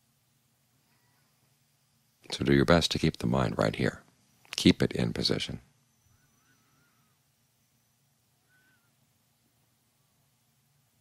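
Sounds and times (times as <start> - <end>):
faint steady hum: 0.0 - 11.0
faint wavering high calls: 0.8 - 1.5, 5.8 - 10.4.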